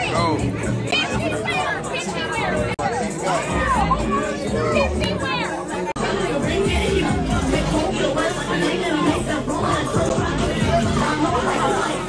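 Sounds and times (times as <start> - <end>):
background music: 0.0 - 12.0
voices talking: 0.0 - 12.0.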